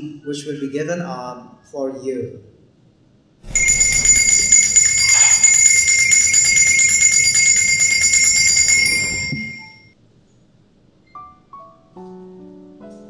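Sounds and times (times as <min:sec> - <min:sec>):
small bells jingling: 0:03.5 - 0:09.9.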